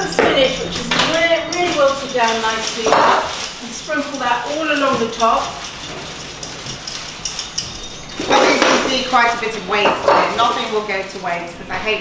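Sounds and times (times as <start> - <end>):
peeler scraping carrot: 0.0 - 11.5.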